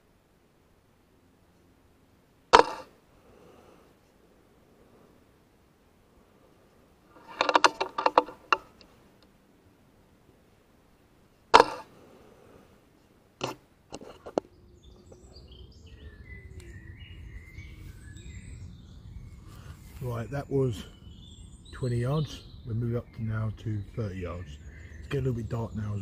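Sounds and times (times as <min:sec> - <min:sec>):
birds chirping faintly: 0:00.0 - 0:26.0.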